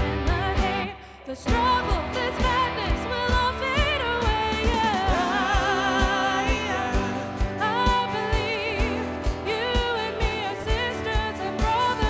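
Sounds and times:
woman singing: 0.0s - 12.0s
worship band playing: 1.5s - 12.0s.

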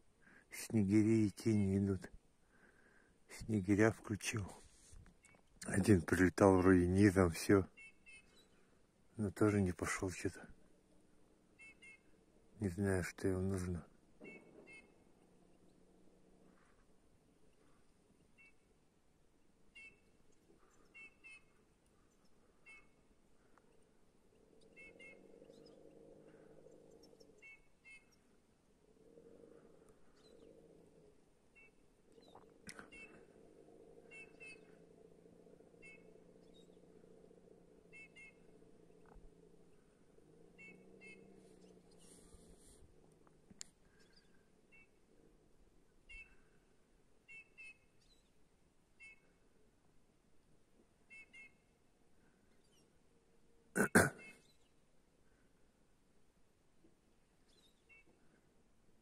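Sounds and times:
faint low hum: 0.0s - 59.0s.

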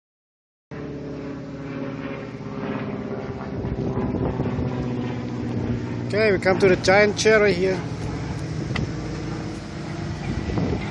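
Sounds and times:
vehicle engine humming: 0.7s - 10.9s.

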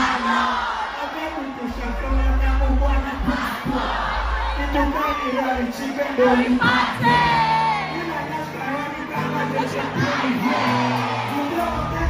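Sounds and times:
band with heavy bass: 0.0s - 12.0s
crowd shouting: 0.0s - 12.0s.

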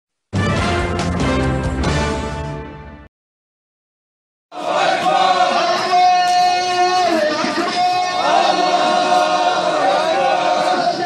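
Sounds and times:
crowd chanting: 4.5s - 11.0s.

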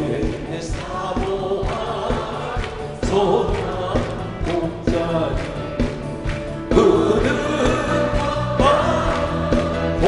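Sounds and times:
man singing a hymn: 0.0s - 6.0s, 6.6s - 10.0s
band with steady drum beat: 0.0s - 10.0s
group of voices singing: 0.0s - 10.0s.

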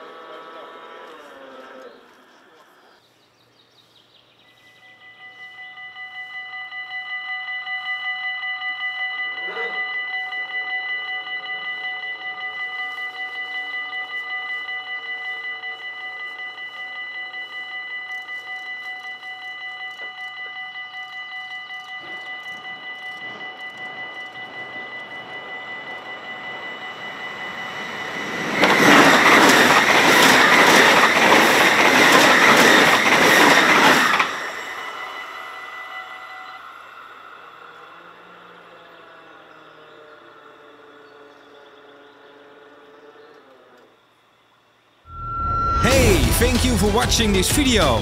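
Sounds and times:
level crossing warning bells: 4.0s - 43.3s, 45.1s - 48.0s.

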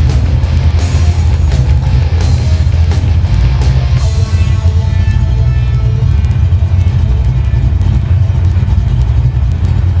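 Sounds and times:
car engine idling with deep rumble: 0.0s - 10.0s
faint rock music: 0.0s - 10.0s.

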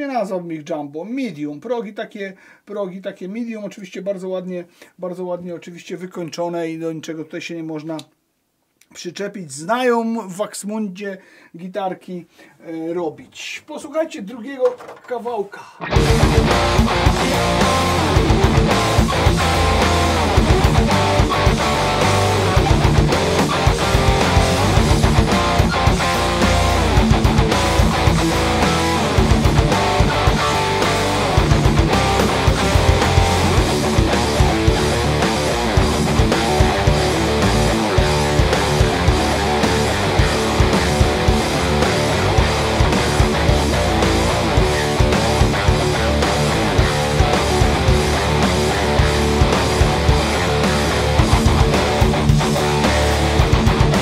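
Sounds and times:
electric guitar riff: 15.8s - 54.0s
backing track drum beat: 15.9s - 54.0s.

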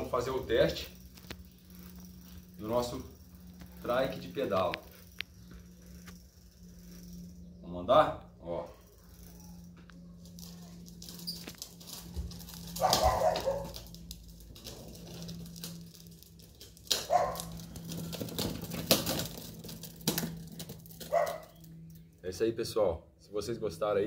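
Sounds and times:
trike rattling on concrete: 0.0s - 22.4s
steady low hum: 0.0s - 24.0s
dog barking: 12.8s - 13.8s, 17.1s - 17.5s, 21.1s - 21.6s.

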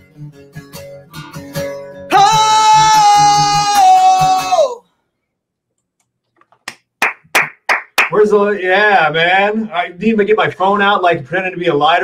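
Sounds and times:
acoustic guitar: 0.0s - 5.0s
man singing: 2.1s - 4.8s
person clapping: 6.6s - 8.2s.

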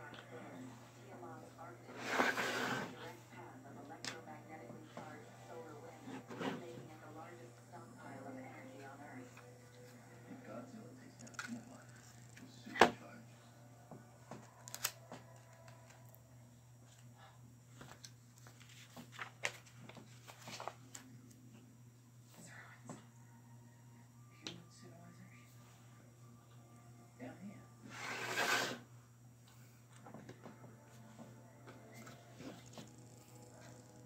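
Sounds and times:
paper booklet handling: 14.5s - 16.0s, 17.8s - 21.1s.

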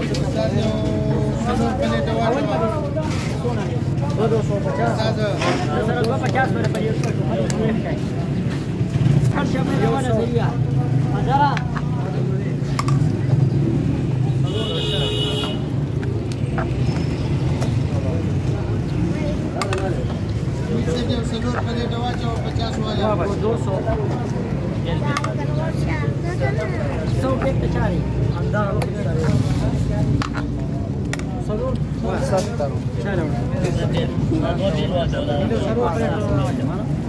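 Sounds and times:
low traffic rumble: 0.0s - 37.0s
men talking: 0.0s - 37.0s.

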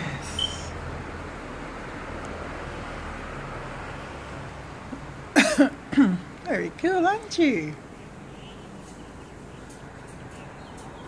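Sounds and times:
person coughing: 5.4s - 6.2s.

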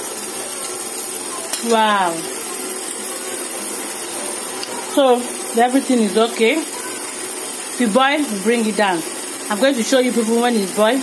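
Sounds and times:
gas burner hissing: 0.0s - 11.0s.

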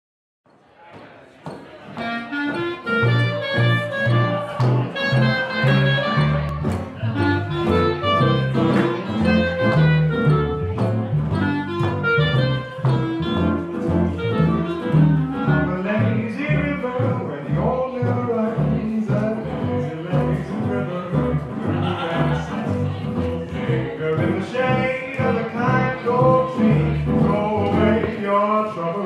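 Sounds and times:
double bass notes: 1.9s - 29.0s
clarinet melody: 2.0s - 17.2s
swing jazz band: 2.0s - 28.6s.

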